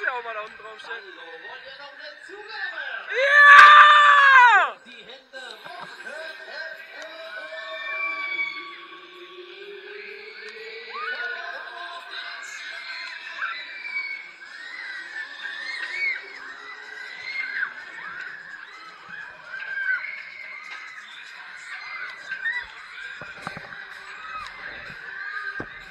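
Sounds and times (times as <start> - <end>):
long drawn-out yell: 3.1 - 4.8
riders screaming: 3.1 - 4.8.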